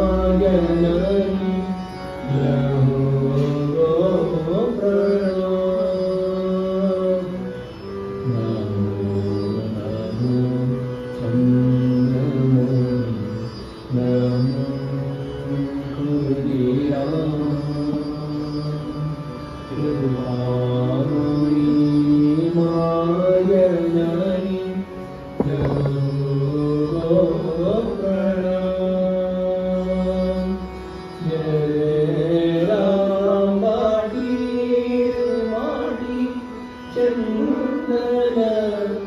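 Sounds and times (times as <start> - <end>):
harmonium playing: 0.0 - 39.0.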